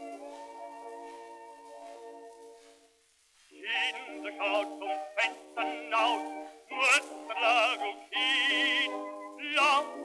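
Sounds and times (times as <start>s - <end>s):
old record of strings and zither: 0.0s - 10.0s.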